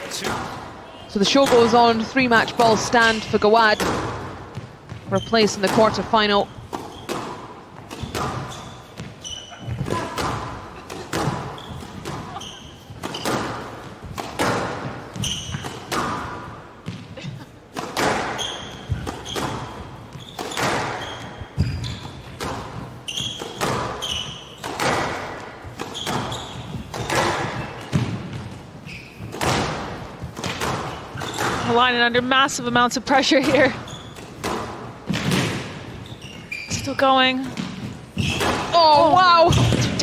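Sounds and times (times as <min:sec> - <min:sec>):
shoes squeaking on court floor: 0:00.0 - 0:40.0
squash ball hitting rackets and walls: 0:00.0 - 0:40.0.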